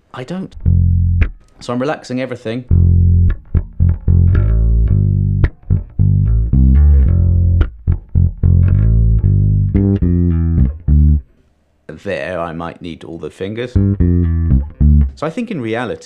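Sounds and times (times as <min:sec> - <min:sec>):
electric bass plucked notes: 0:00.5 - 0:01.4, 0:02.7 - 0:11.3, 0:13.7 - 0:15.3.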